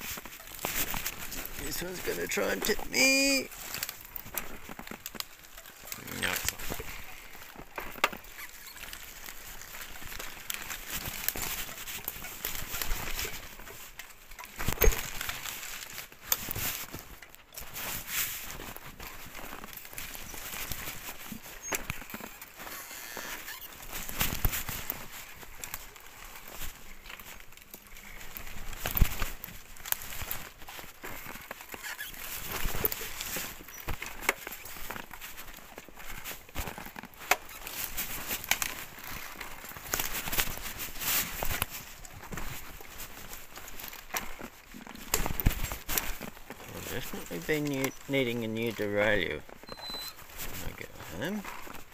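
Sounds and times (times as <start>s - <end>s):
frame and chain rattling: 0.0s - 51.9s
tyre rolling on dirt trail: 0.0s - 51.9s.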